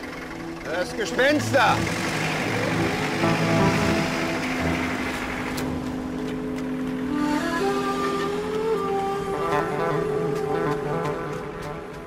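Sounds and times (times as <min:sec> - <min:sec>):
tractor engine idling: 0:00.0 - 0:08.4
sustained film score notes: 0:00.0 - 0:12.0.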